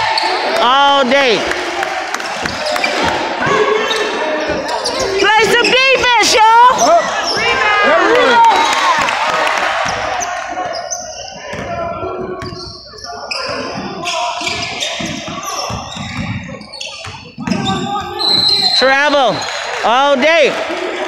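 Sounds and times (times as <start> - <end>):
sneakers squealing: 0.0 - 0.6, 2.3 - 19.8
voices echoing in hall: 0.0 - 21.0
ball dribbling: 13.4 - 18.8.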